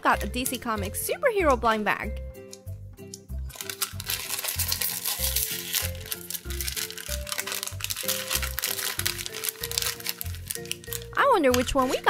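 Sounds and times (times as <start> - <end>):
background music with steady beat: 0.0 - 12.0
foil wrapper crinkling: 3.5 - 12.0.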